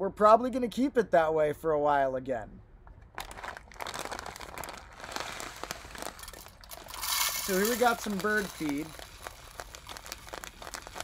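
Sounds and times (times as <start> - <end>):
plastic bag crinkling: 3.1 - 11.0.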